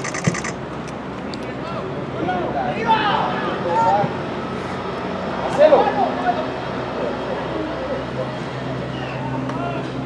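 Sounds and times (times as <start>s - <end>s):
outdoor background hum: 0.0s - 10.0s.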